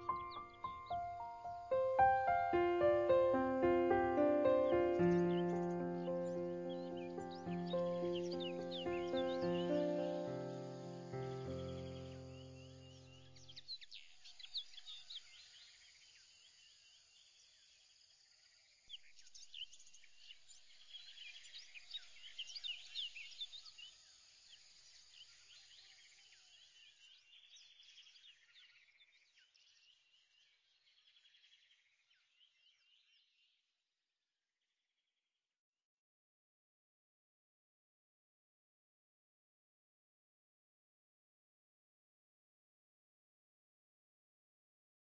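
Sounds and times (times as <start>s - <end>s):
background music: 0.0s - 12.9s
birdsong chirps and trills: 0.0s - 16.3s.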